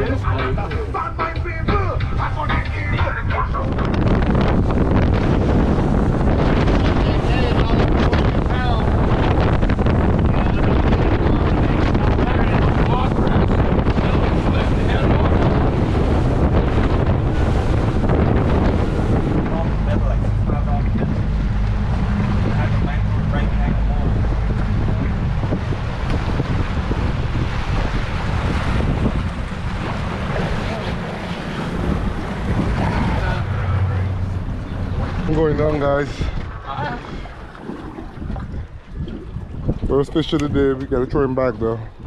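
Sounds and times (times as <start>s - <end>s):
boat engine at speed: 0.0s - 42.0s
water rushing along hull: 0.0s - 42.0s
wind buffeting microphone: 0.0s - 42.0s.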